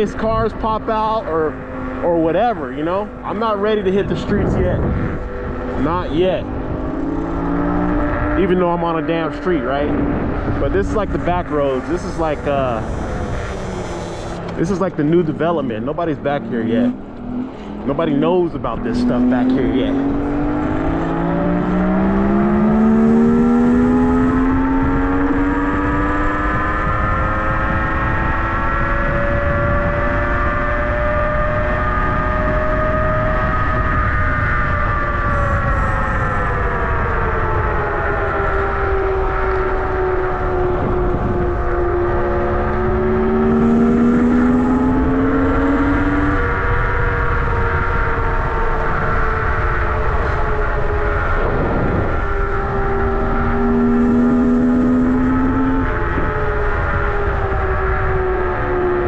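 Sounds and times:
lower motor whine: 0.0 - 59.0
wind rush: 0.0 - 59.0
electric scooter motor whining: 12.7 - 14.6, 26.5 - 59.0.

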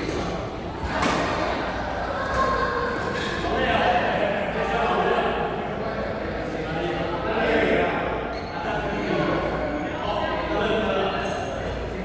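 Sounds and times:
indistinct voices echoing: 0.0 - 12.0.

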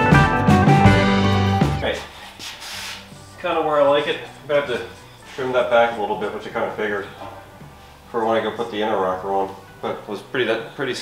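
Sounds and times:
man speaking: 1.8 - 2.2, 3.4 - 7.3, 8.1 - 11.0.

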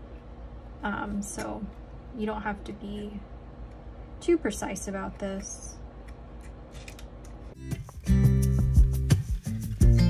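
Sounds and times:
music: 7.6 - 10.0.

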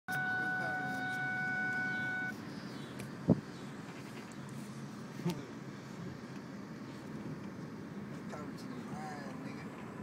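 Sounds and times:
steady high tone: 0.1 - 2.4
minivan running noise: 0.1 - 10.0.

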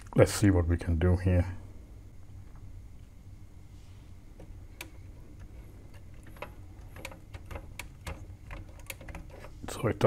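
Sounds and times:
sharp plastic clicks: 5.9 - 9.5.

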